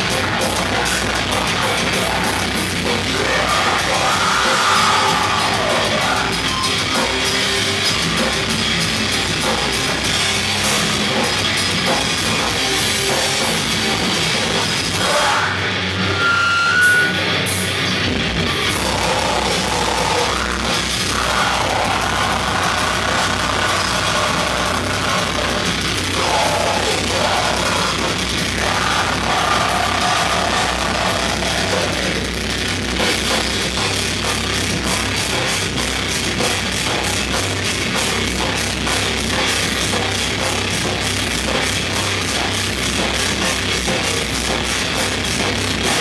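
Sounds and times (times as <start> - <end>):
bass guitar: 0.0 - 46.0
drum kit: 0.0 - 46.0
electric guitars: 0.0 - 46.0
live metal band playing: 0.0 - 46.0
cymbals struck fast: 18.6 - 46.0.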